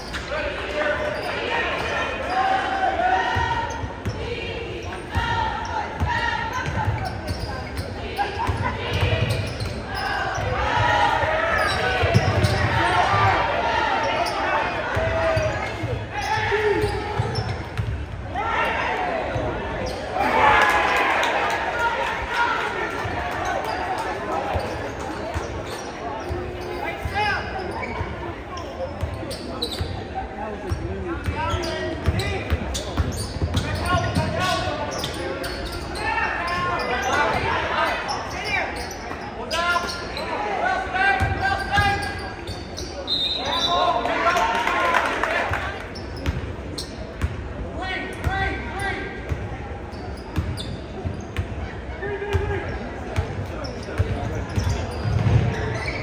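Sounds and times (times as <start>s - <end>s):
spectators talking and calling out: 0.0s - 56.0s.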